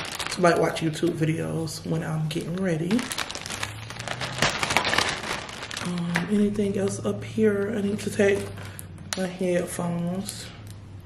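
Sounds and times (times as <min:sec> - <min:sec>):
plastic bag crinkling: 0:00.0 - 0:09.3.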